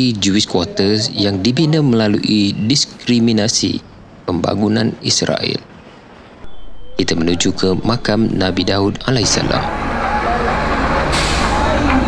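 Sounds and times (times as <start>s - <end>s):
train engine running: 6.5s - 12.0s
air brakes hissing: 9.4s - 12.0s.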